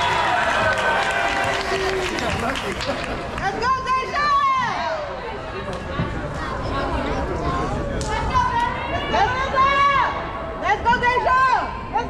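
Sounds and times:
many voices calling and chattering: 0.0s - 12.0s.

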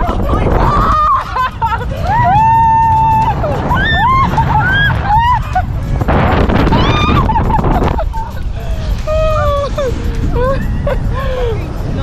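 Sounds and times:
women screaming: 0.0s - 5.7s, 6.5s - 11.7s
low rumble of wind and snow: 0.0s - 12.0s.

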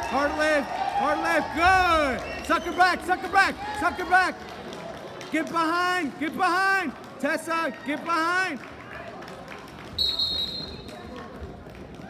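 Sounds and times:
referee's whistle blast: 10.0s - 10.9s.

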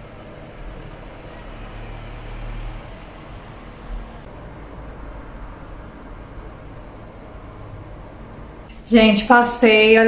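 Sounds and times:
faint hum: 0.0s - 10.0s
low background rumble: 2.7s - 9.4s.

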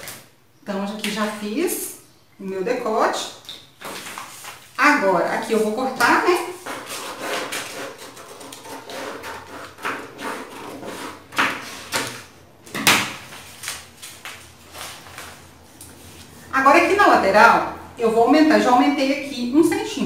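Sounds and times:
paper rustling and crinkling: 3.8s - 4.8s, 13.1s - 16.5s
scissors cutting paper: 6.0s - 11.5s.

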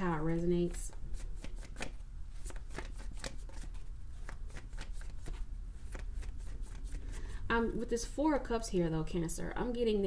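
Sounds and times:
cards being shuffled: 0.7s - 7.2s.

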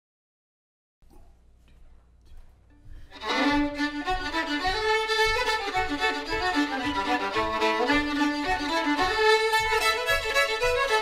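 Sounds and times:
faint small sounds: 1.0s - 3.6s
two fiddles playing: 2.8s - 11.0s.

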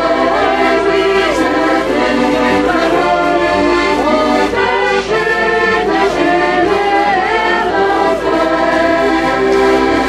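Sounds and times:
button accordions playing chords: 0.0s - 10.0s.

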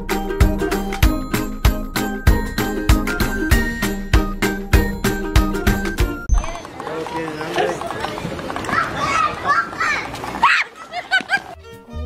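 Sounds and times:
children shrieking: 8.7s - 11.1s.

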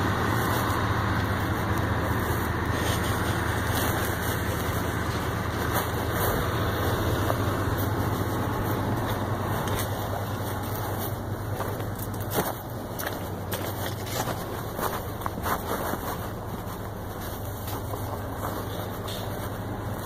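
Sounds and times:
vehicle engine idling: 0.0s - 20.0s
phone rustling in a pocket: 7.3s - 19.6s.

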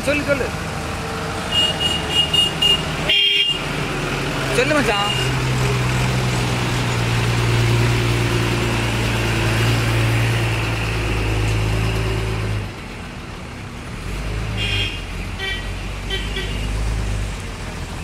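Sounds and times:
cars passing: 0.0s - 18.0s
diesel lorry engine passing: 0.0s - 18.0s.

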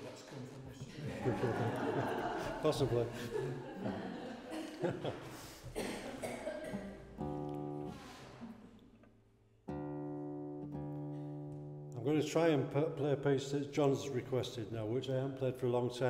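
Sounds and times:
guitar string plucked: 7.0s - 8.4s.

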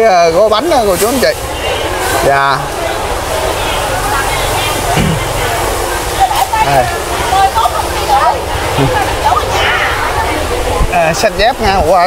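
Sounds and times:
people chatting: 0.0s - 12.0s
water running and splashing: 0.0s - 12.0s.

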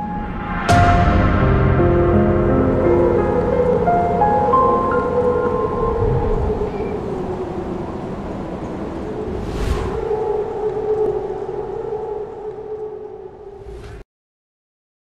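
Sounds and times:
whoosh sweep: 9.1s - 11.0s, 13.5s - 14.0s.

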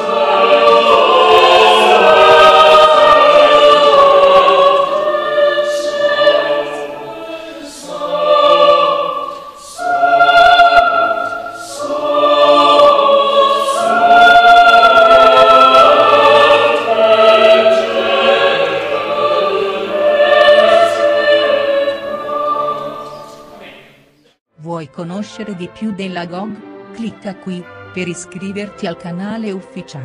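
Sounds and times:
mixed choir singing: 0.0s - 24.0s.

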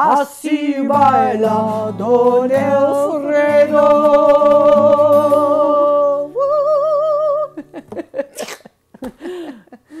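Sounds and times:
woman singing with vibrato: 0.0s - 7.6s
acoustic guitar chord: 0.9s - 7.6s
laughter: 7.4s - 10.0s
breaths: 9.1s - 10.0s.

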